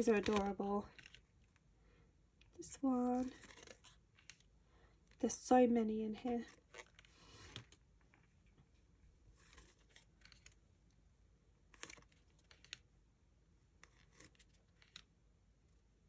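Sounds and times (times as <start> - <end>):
paper rustling: 3.0 - 4.5, 6.5 - 10.6, 11.7 - 12.8.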